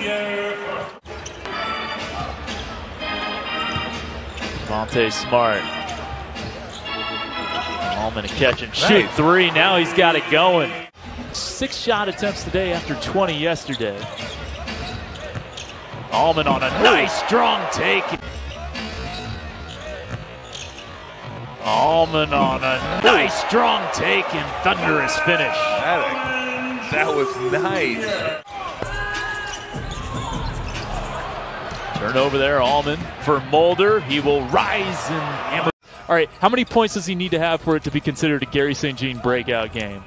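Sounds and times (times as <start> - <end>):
sneaker squeaks: 0.8 - 2.8, 3.7 - 5.0, 5.7 - 7.0, 13.6 - 16.1, 18.2 - 21.4, 28.0 - 32.0.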